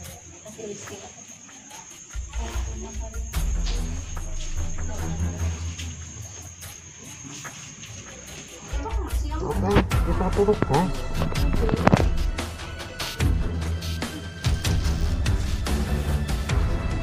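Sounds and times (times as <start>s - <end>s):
crickets trilling: 0.0s - 17.0s.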